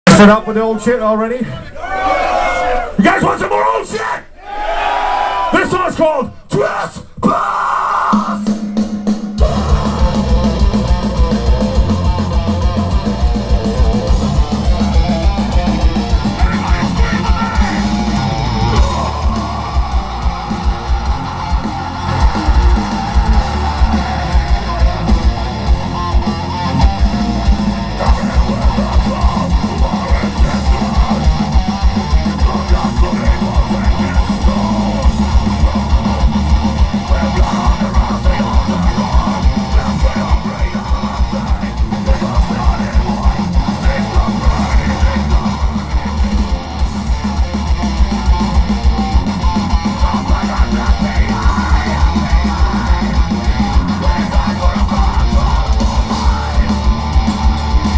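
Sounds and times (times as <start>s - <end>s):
distorted electric guitars: 7.2s - 57.9s
bass guitar: 8.0s - 57.9s.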